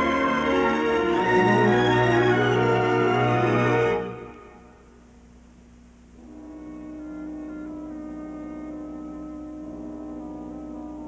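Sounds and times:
orchestral film music: 0:00.0 - 0:04.8, 0:06.2 - 0:11.0.

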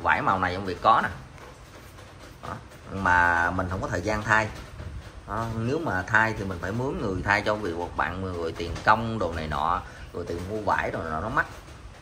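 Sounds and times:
man speaking: 0:00.0 - 0:01.3, 0:02.4 - 0:11.7.

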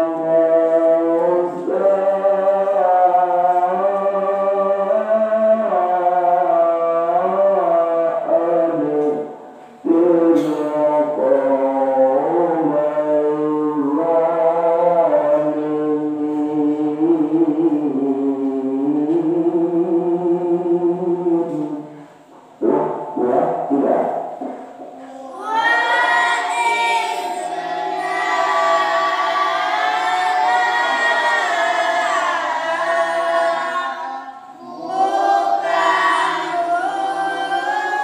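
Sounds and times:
man reciting melodically: 0:00.0 - 0:38.0.

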